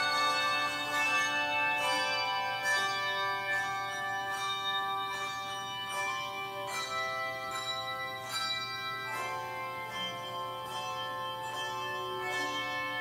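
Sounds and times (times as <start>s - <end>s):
handbell choir playing: 0.0s - 13.0s.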